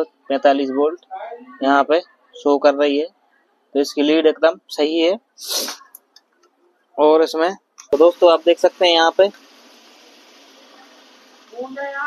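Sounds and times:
man speaking: 0:00.0 - 0:01.0, 0:01.6 - 0:03.1, 0:03.7 - 0:05.8, 0:07.0 - 0:09.3
breathy burst of air: 0:05.4 - 0:05.8.

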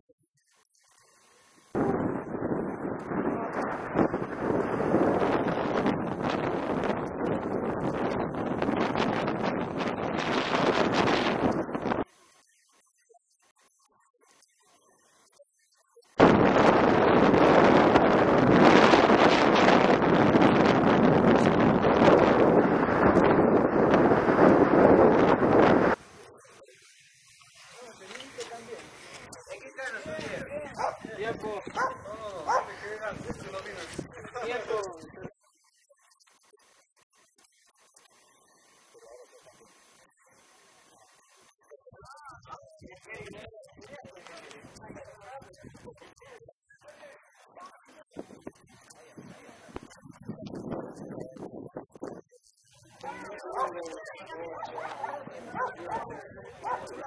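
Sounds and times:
wind buffeting microphone: 0:01.7 - 0:12.1, 0:16.2 - 0:26.0, 0:29.9 - 0:35.4, 0:48.0 - 0:57.0
small dog barking: 0:30.8 - 0:31.1, 0:31.7 - 0:32.8, 0:53.4 - 0:57.0.

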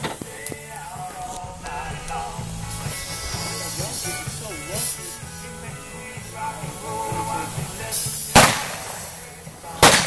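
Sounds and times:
pistol shot: 0:08.3 - 0:09.0.

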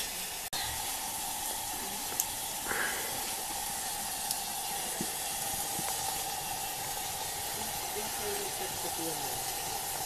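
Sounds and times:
curry bubbling: 0:00.0 - 0:10.0.

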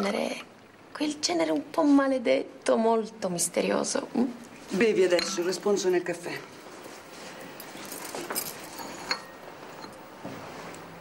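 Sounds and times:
china coffee cup clinking: 0:05.1 - 0:05.6, 0:08.3 - 0:10.0.

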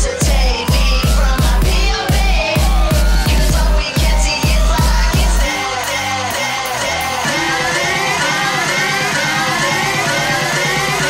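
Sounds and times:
heavy kick drum: 0:00.0 - 0:05.5
electronic dance music: 0:00.0 - 0:11.0
fast repeating synth notes: 0:00.0 - 0:11.0.

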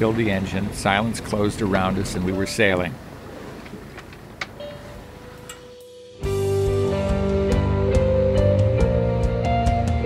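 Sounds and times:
wind and water noise: 0:00.0 - 0:05.6.

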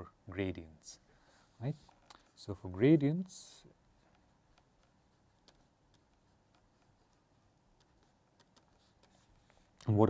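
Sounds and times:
stylus ticking on tablet screen: 0:04.5 - 0:09.5.

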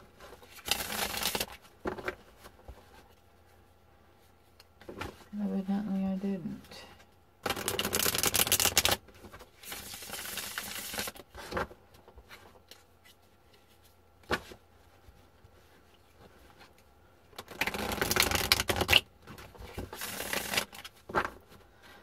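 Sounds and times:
cards being riffle-shuffled: 0:00.2 - 0:03.1, 0:07.4 - 0:14.6, 0:17.4 - 0:21.6.

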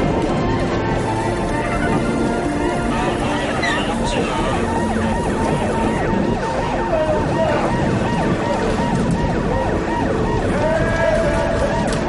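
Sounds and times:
emergency sirens wailing: 0:00.0 - 0:12.0.

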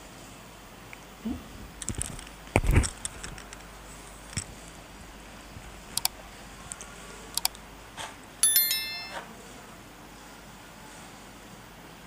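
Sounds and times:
electronic chime: 0:08.4 - 0:09.4.

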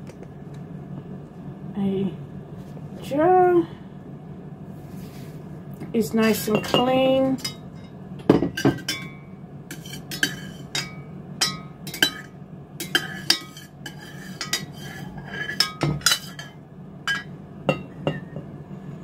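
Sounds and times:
steady low hum: 0:00.0 - 0:19.0
utensil clinking on enamel pot: 0:06.2 - 0:18.4.

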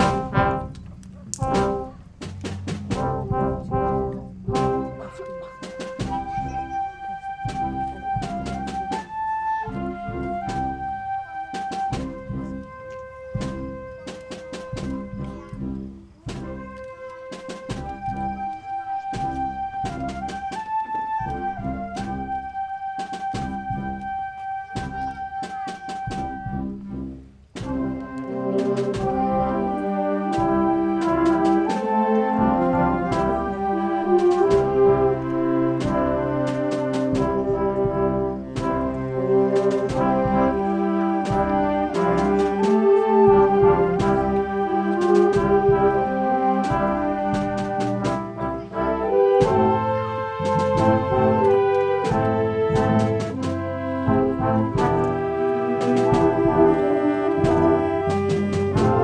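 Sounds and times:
sharp percussion strikes: 0:00.0 - 0:06.8
brass chords: 0:00.0 - 0:59.0
wind band playing: 0:00.0 - 0:59.0.

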